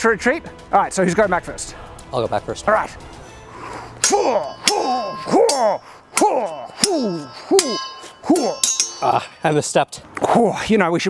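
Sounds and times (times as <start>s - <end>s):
steel swords clashing: 3.2s - 9.8s.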